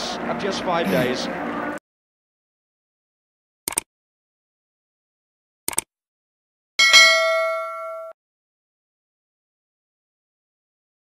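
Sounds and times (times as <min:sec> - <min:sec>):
bright bell ding: 0:06.8 - 0:08.2.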